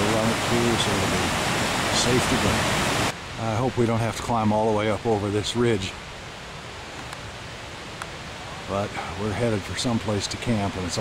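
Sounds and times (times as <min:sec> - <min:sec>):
outdoor rushing hiss: 0:00.0 - 0:03.6
faint tick: 0:08.0 - 0:08.2.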